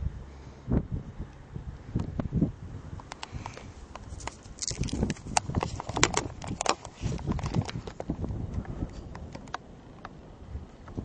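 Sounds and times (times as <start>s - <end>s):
camera handling clicks and knocks: 3.0s - 8.1s.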